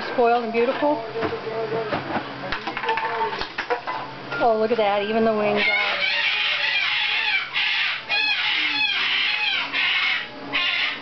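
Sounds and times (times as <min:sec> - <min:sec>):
cockatoos screeching: 0:05.6 - 0:11.0.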